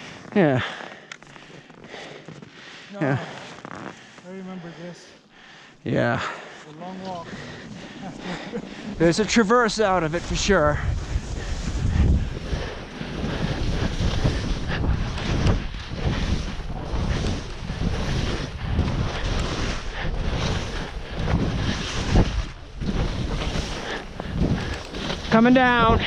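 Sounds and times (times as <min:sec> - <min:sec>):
skis scraping on snow: 0:00.0 - 0:26.0
wind rushing over microphone: 0:07.5 - 0:26.0.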